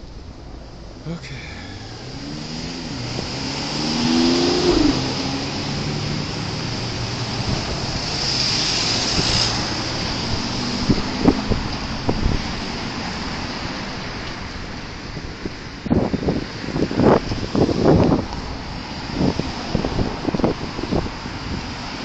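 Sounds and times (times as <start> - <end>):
cars driving past: 0.0 - 22.0
car engine revving: 1.0 - 13.7.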